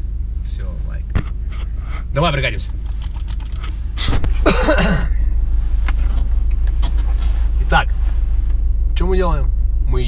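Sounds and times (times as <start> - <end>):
car engine idling: 0.0 - 10.0
sharp clicks: 2.6 - 3.8
person coughing: 4.3 - 5.2.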